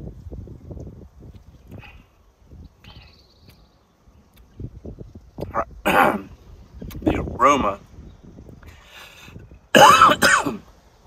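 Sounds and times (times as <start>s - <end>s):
man coughing hard: 5.8s - 6.3s, 9.7s - 10.6s.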